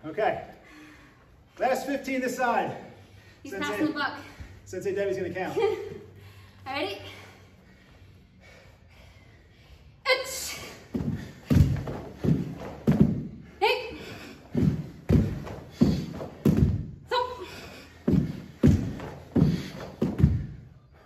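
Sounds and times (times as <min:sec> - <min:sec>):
woman shouting counts: 0:10.0 - 0:10.7, 0:13.6 - 0:14.0, 0:17.0 - 0:17.5
bare feet thudding on wooden floor: 0:10.9 - 0:13.5, 0:14.1 - 0:20.6.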